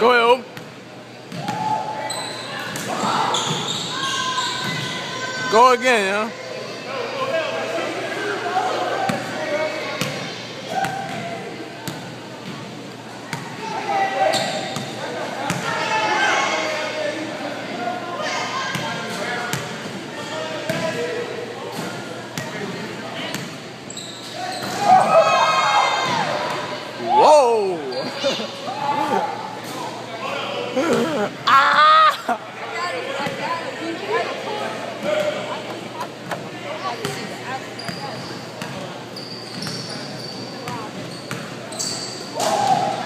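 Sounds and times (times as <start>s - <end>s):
voices talking: 0.0s - 12.3s, 12.9s - 43.0s.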